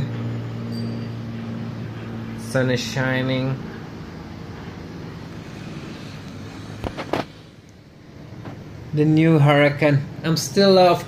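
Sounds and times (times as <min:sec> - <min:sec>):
low city background hum: 0:00.0 - 0:11.0.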